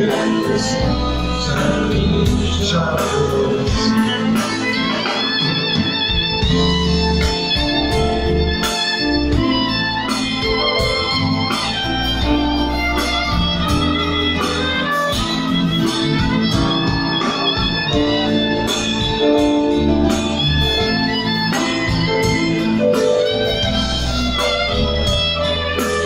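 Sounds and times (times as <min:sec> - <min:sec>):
live pop-rock band playing: 0:00.0 - 0:26.0.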